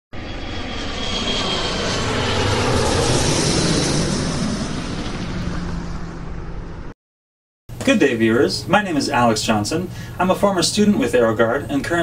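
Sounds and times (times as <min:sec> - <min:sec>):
airplane engine drone: 0:00.1 - 0:07.0, 0:07.7 - 0:12.0.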